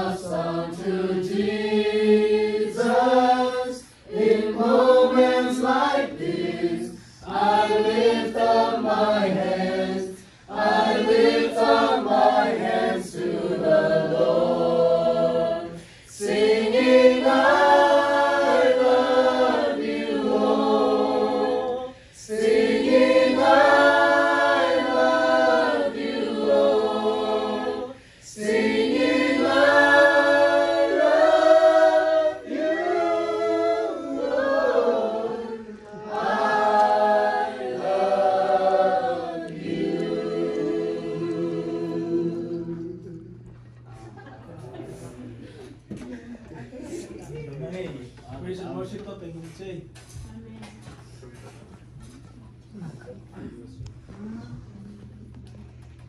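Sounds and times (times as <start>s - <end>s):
group singing in harmony: 0.0s - 44.3s.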